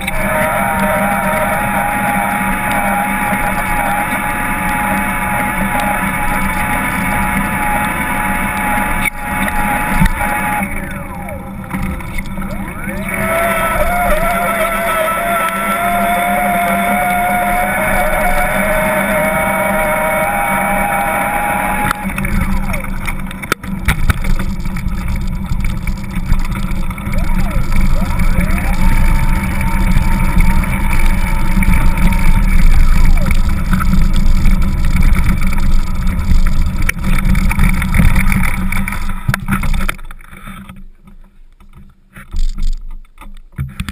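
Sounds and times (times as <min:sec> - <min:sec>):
wavering whine: 0:00.0 - 0:40.8.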